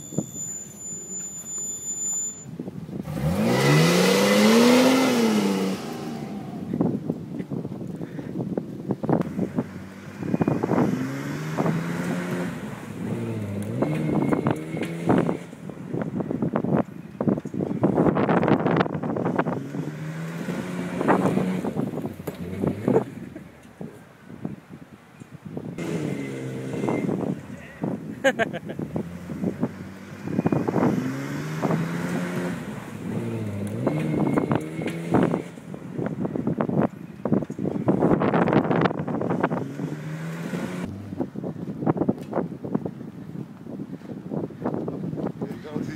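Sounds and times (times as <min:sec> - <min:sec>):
car engine revving: 0:03.0 - 0:06.9, 0:09.2 - 0:15.7, 0:18.4 - 0:23.5, 0:25.8 - 0:28.0, 0:28.6 - 0:36.6, 0:37.9 - 0:41.6.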